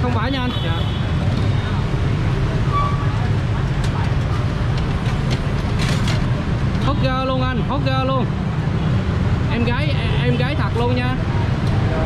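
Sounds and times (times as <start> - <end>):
street traffic rumble: 0.0 - 12.0.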